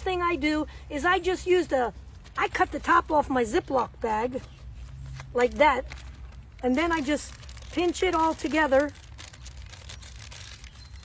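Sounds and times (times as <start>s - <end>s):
plastic bag crinkling: 4.4s - 11.0s.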